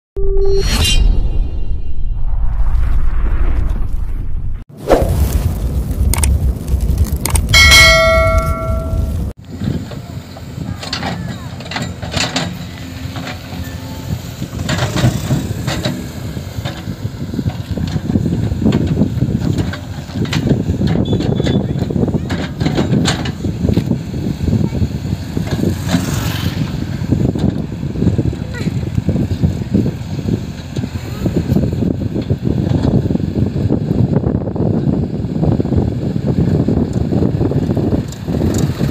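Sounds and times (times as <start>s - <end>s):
diesel engine under load: 4.7s - 38.9s
low rumble with ringing chime: 7.1s - 9.4s
backhoe digging soil: 10.9s - 33.1s.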